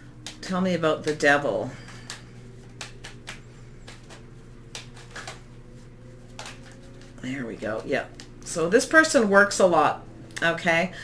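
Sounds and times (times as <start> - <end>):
cards being shuffled: 0.0 - 9.3
faint steady hum: 0.0 - 11.0.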